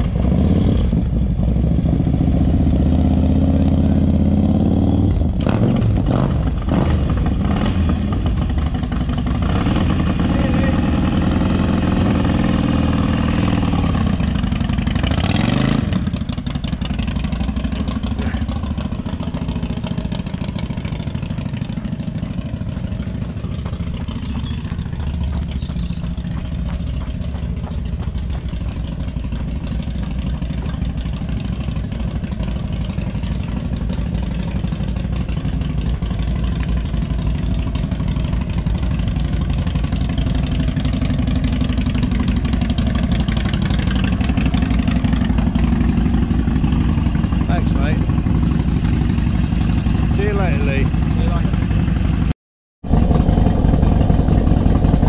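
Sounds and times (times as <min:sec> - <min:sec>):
motorcycle engines revving: 0:00.0 - 0:52.3, 0:52.9 - 0:55.0.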